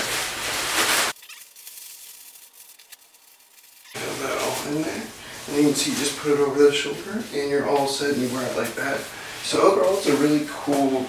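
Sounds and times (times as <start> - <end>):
nylon jacket fabric rustling: 0.0 - 11.0.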